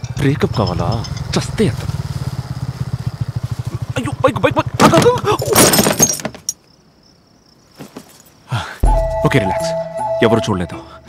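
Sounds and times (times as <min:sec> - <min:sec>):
motorcycle engine idling: 0:00.0 - 0:05.3
glass shattering: 0:05.3 - 0:06.6.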